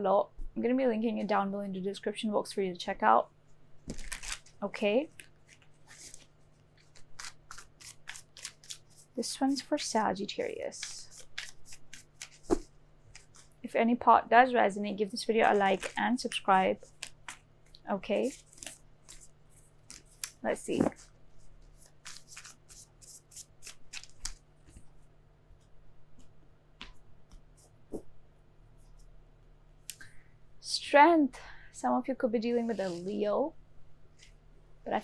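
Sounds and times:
cards being shuffled: 0:03.9 - 0:09.2, 0:10.4 - 0:13.6, 0:15.2 - 0:17.4, 0:18.2 - 0:24.9.

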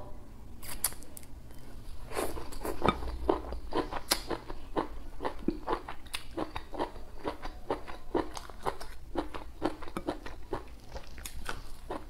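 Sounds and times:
person chewing wet mouth clicks: 0:03.8 - 0:12.0.

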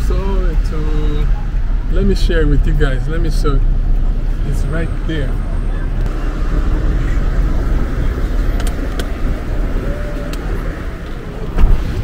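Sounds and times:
car driving rumble inside cabin: 0:00.0 - 0:12.0
thump: 0:11.6 - 0:11.9.

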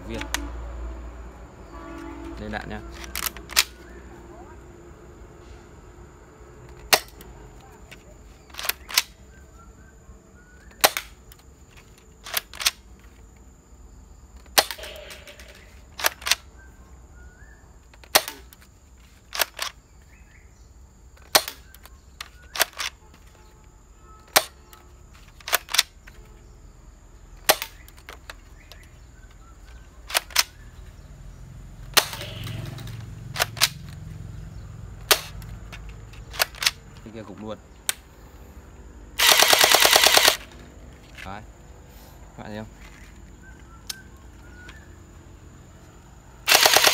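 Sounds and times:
toy blaster firing shots: 0:14.5 - 0:16.4, 0:18.0 - 0:18.5, 0:31.9 - 0:33.7, 0:39.2 - 0:40.5, 0:46.4 - 0:46.9.

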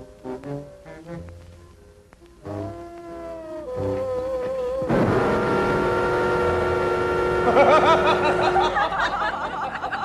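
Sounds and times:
loud chord of steady tones: 0:03.7 - 0:10.0.

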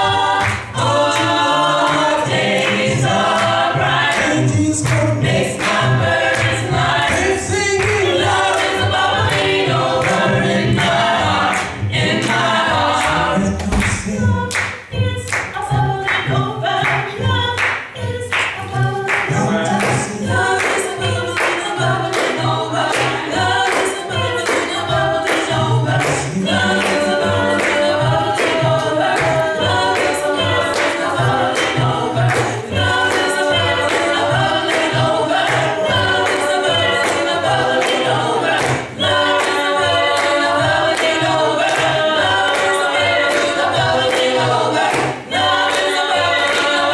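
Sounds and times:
gospel choir singing: 0:00.0 - 0:46.9.

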